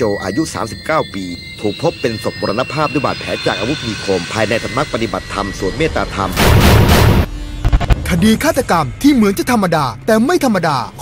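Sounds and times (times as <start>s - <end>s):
loud boom: 6.3s - 8.1s
low thumps: 6.4s - 8.1s.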